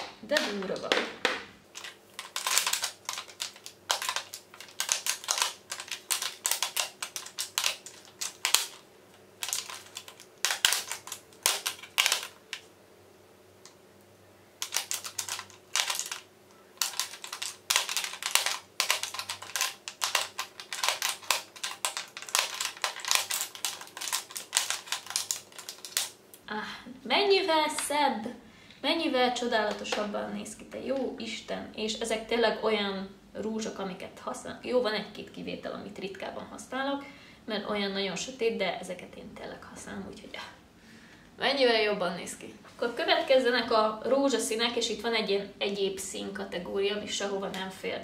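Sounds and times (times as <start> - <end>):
plastic tubes clicking together: 0.0 - 8.8, 9.4 - 12.7, 14.6 - 26.2.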